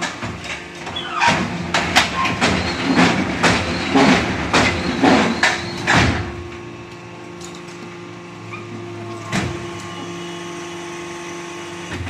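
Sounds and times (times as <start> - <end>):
hydraulic unit humming: 0.0 - 12.0
brick press clattering knocks: 1.2 - 6.4.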